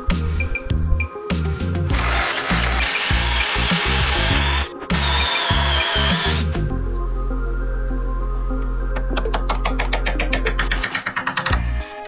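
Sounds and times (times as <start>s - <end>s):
background music: 0.0s - 12.0s
power tool boring into wood: 1.9s - 6.6s.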